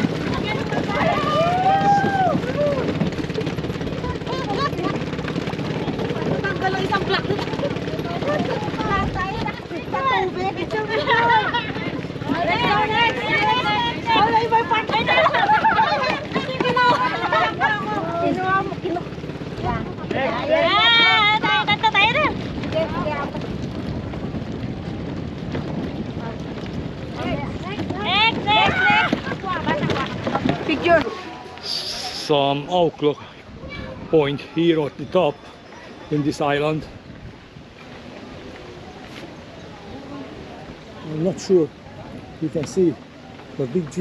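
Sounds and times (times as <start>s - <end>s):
people chattering: 0.0s - 23.6s, 26.0s - 37.0s, 37.8s - 44.0s
wind rumbling on microphone: 0.0s - 44.0s.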